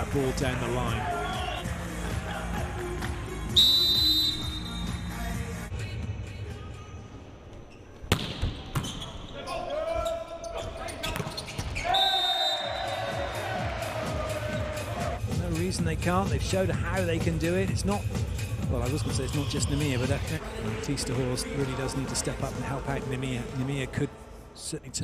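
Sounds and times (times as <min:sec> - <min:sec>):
indoor arena noise: 0:00.0 - 0:25.0.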